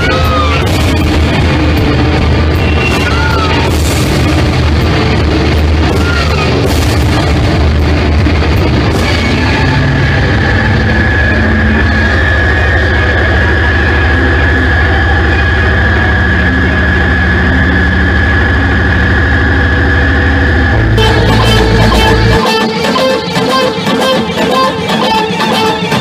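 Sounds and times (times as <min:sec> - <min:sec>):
rock band low drone: 0:00.0 - 0:26.0
steady high whine: 0:00.0 - 0:26.0.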